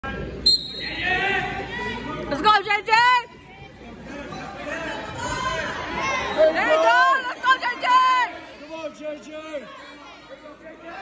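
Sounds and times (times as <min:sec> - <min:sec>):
voices in echoing gym: 0:00.0 - 0:11.0.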